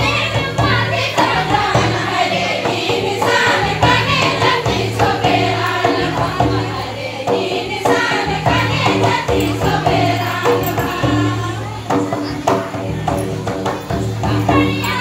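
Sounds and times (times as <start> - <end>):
drum beats: 0.0 - 15.0
group singing in chorus: 0.0 - 15.0.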